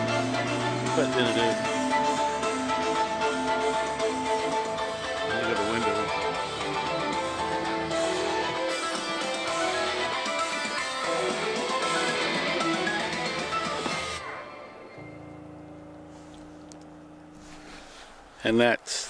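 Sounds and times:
rock music over car speakers: 0.0 - 17.6
low hum: 14.3 - 19.0.

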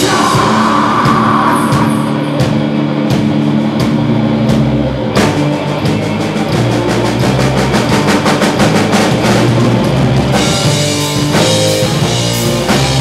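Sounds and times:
heavy metal band playing live: 0.0 - 13.0.

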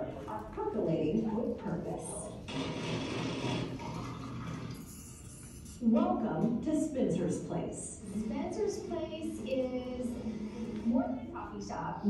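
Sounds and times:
coffee machine whirring hiss: 2.5 - 5.4.

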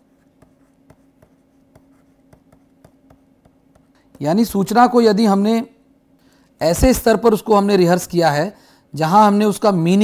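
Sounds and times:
low steady hum: 0.0 - 10.0
stylus tapping on tablet: 0.2 - 4.2.

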